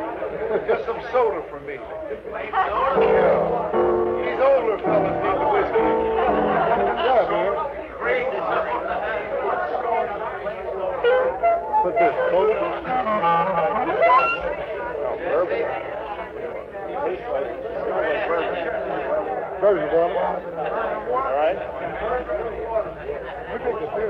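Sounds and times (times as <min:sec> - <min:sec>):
party guests talking: 0:00.0 - 0:24.0
held instrument notes: 0:02.9 - 0:07.7, 0:10.9 - 0:15.0.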